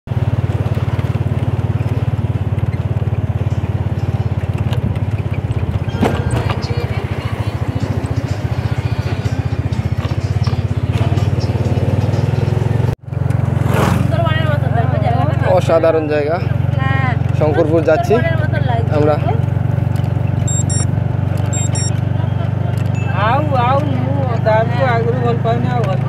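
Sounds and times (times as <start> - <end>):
motorcycle engine running: 0.1 - 26.0
road and wind noise: 0.1 - 26.0.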